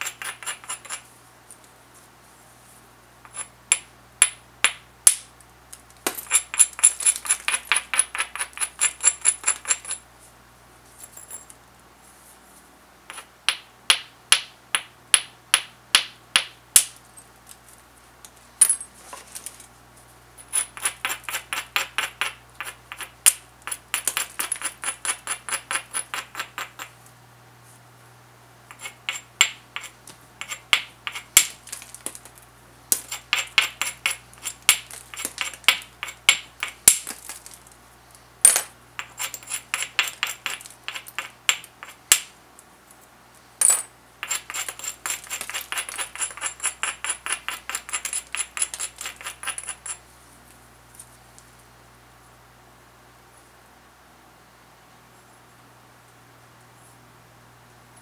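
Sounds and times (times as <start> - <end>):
stone scratching stone edge: 0.0 - 1.0, 6.2 - 10.0, 20.4 - 26.9, 28.7 - 31.7, 32.9 - 36.9, 39.0 - 42.0, 44.2 - 50.0.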